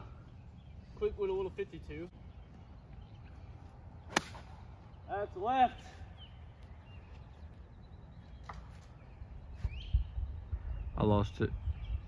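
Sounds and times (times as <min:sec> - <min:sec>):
golf club striking ball: 0:04.1 - 0:04.6.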